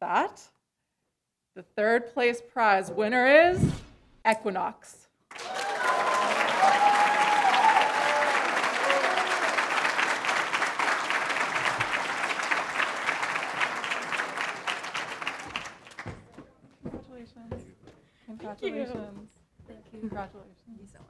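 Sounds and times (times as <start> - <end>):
people cheering: 5.3 - 16.1
audience applauding: 5.3 - 16.2.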